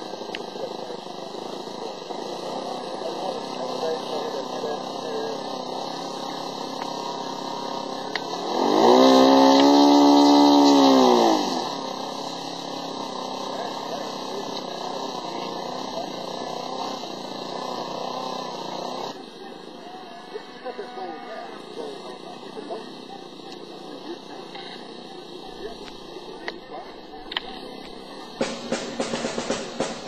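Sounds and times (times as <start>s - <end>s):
model airplane engine revving: 0.0s - 30.0s.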